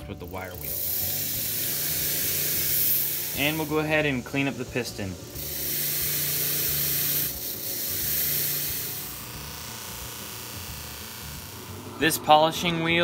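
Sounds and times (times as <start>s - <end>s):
bench motor hum: 0.4s - 13.0s
rubbing hiss on polishing wheel: 0.7s - 9.4s.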